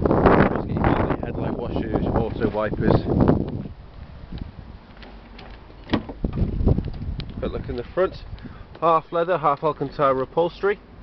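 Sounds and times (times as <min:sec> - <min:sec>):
car door swinging open: 0:05.0 - 0:07.1.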